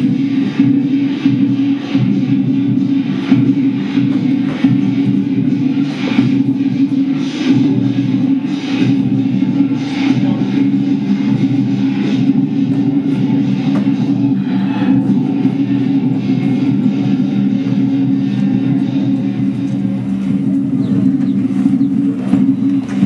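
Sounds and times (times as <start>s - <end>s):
cymbals crashing: 0.0s - 23.0s
drum beating: 0.0s - 23.0s
loud low drone: 0.0s - 23.0s.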